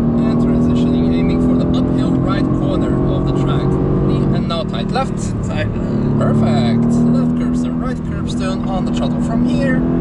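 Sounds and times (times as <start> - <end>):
car engine from inside cabin: 0.0 - 10.0.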